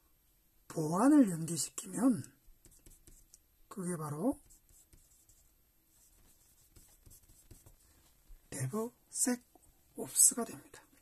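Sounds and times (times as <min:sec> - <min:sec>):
pencil writing on paper: 0:02.6 - 0:03.4, 0:04.4 - 0:07.8.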